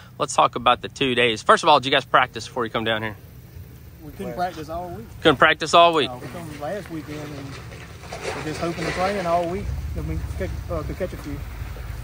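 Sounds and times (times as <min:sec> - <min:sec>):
man speaking: 0:00.1 - 0:03.2, 0:04.0 - 0:07.5.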